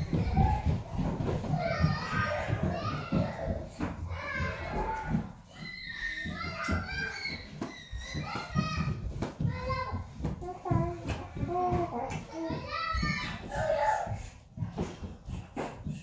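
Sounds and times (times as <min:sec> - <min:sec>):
children chattering: 0:00.0 - 0:08.9.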